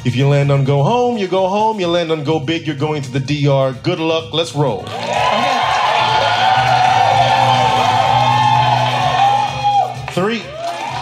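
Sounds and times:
game-show music with beat: 0:00.0 - 0:11.0
audience cheering and whooping: 0:04.9 - 0:11.0.

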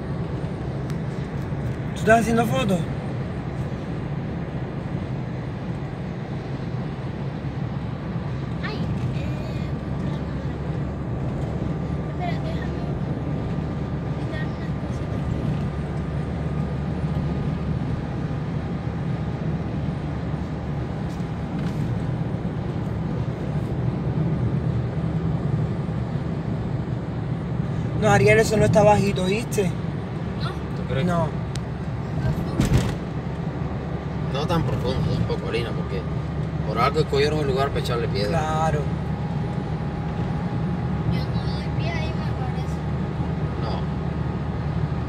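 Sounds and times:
car road and engine noise: 0:00.0 - 0:45.0.

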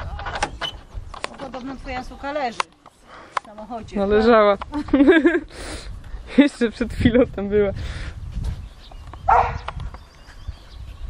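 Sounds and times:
dog barking: 0:09.3 - 0:09.7.

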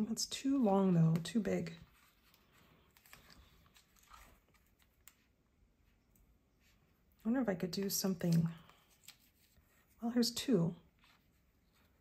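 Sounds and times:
paper rustling: 0:01.1 - 0:06.0, 0:07.8 - 0:10.0, 0:10.8 - 0:12.0.

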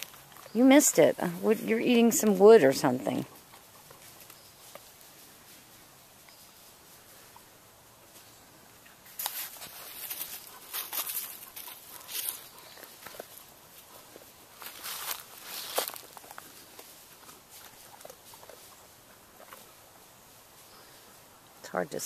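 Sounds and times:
footsteps on dry leaves: 0:09.2 - 0:13.1, 0:14.2 - 0:17.7.

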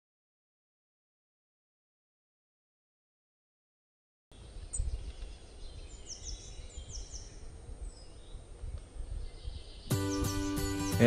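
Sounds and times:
high falling bird chirps: 0:04.3 - 0:11.0.

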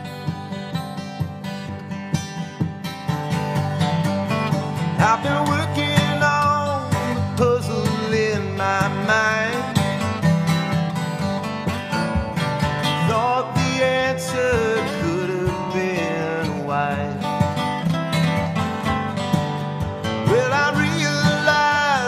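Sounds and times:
strummed acoustic guitar: 0:00.0 - 0:22.0.

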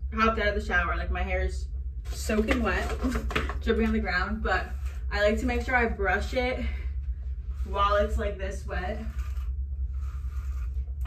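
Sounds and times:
steady low hum: 0:00.0 - 0:11.0
hairbrush brushing wet hair: 0:08.9 - 0:10.8.

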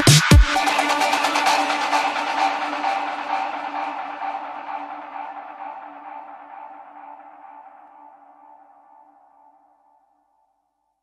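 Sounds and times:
electronic house music: 0:00.0 - 0:06.9.

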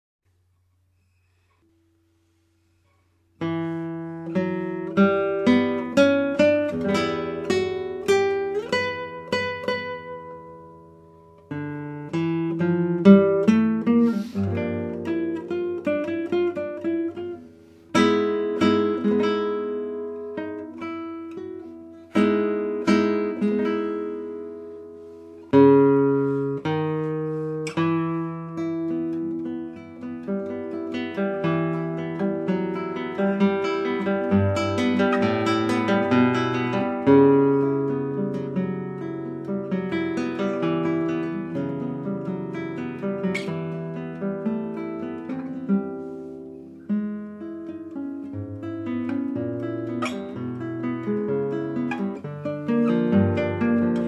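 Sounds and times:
solo classical guitar: 0:00.3 - 0:54.0.

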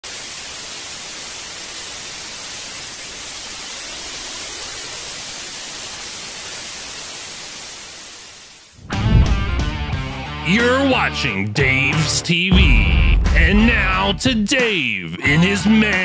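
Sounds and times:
static white noise hiss: 0:00.1 - 0:08.9.

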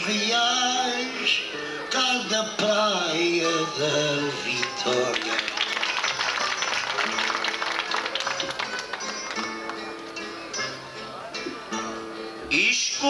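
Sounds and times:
plucked guitars playing: 0:00.0 - 0:13.0.

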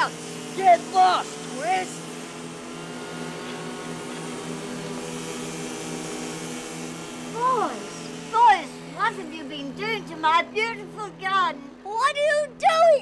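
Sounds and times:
hedge trimmer motor humming: 0:00.0 - 0:13.0.

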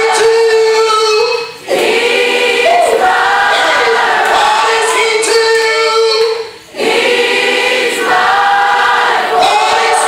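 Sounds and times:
women singing gospel song: 0:01.6 - 0:05.3, 0:06.7 - 0:10.0.

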